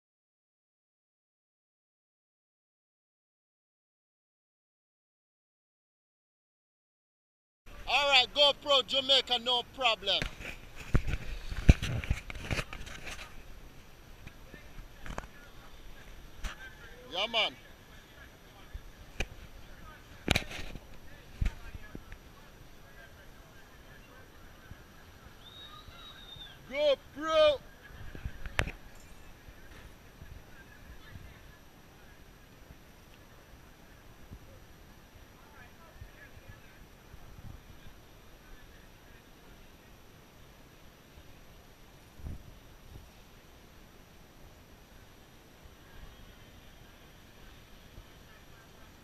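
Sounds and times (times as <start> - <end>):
faint outdoor background: 7.7 - 49.0.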